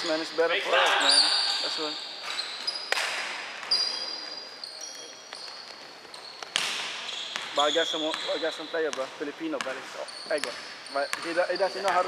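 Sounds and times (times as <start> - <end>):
sneaker squeaks on hardwood: 1.0 - 12.0.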